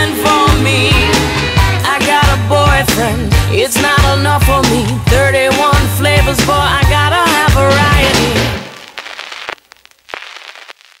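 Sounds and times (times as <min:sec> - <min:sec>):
sharp clicks and pops: 0:08.6 - 0:11.0.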